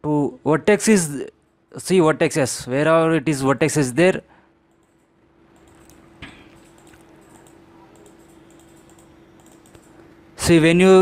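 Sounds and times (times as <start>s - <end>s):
steady low hum: 0.0s - 11.0s
computer mouse clicks: 4.7s - 10.1s.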